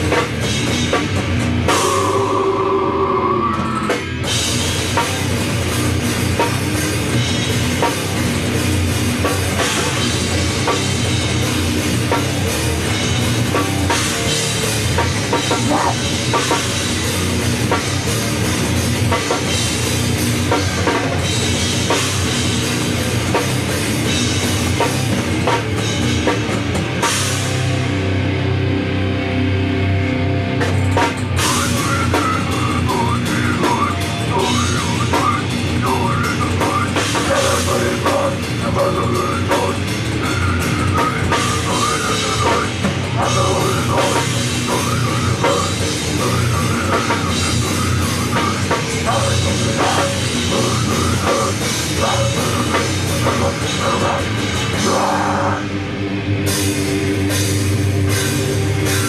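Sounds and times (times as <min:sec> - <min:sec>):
distorted electric guitars: 0:00.0 - 0:59.0
drum kit: 0:00.0 - 0:59.0
heavy metal band playing: 0:00.0 - 0:59.0.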